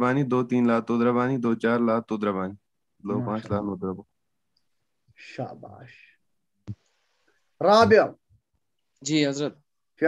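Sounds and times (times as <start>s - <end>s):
soft voice speaking: 3.0s - 3.8s.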